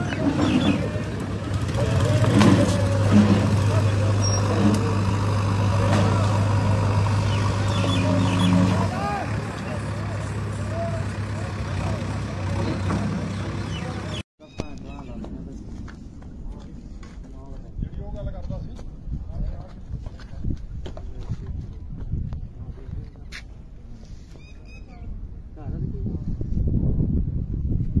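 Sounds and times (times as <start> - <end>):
people talking: 0.0 - 6.8, 7.4 - 15.8, 16.4 - 21.8
low motor hum: 0.0 - 14.2.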